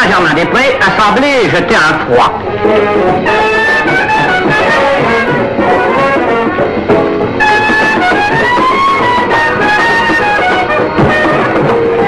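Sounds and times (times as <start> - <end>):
jazz band dance music: 0.0 - 12.0.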